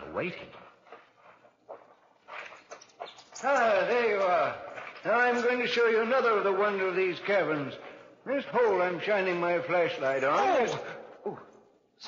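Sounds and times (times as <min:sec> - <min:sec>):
faint scuffing footsteps: 0:00.1 - 0:09.4.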